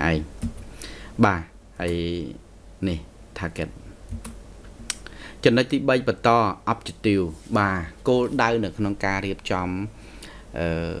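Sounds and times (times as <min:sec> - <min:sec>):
computer keyboard clicks: 0:04.1 - 0:05.0.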